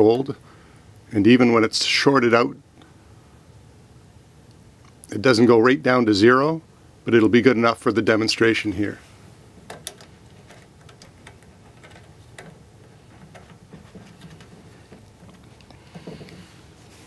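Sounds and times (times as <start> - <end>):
handling knock: 9.6 - 16.7.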